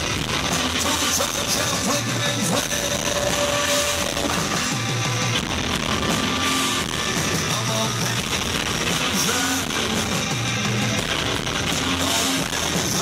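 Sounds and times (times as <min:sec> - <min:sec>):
bass guitar: 0:00.0 - 0:13.0
drums: 0:00.0 - 0:13.0
electric guitar: 0:00.0 - 0:13.0.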